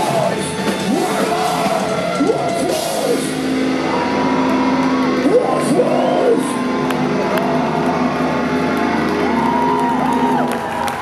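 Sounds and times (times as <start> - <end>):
crowd cheering and whooping: 1.0 - 11.0.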